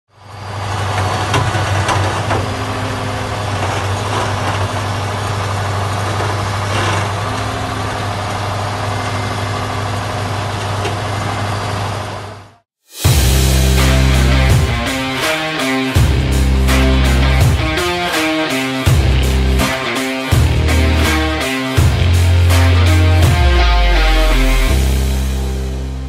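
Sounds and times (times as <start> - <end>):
diesel engine running: 0.1 - 26.0.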